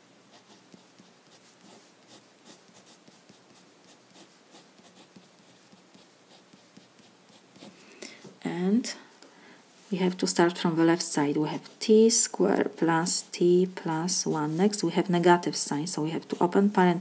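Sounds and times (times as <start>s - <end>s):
felt-tip pen strokes on paper: 0.3s - 7.8s, 13.0s - 17.0s.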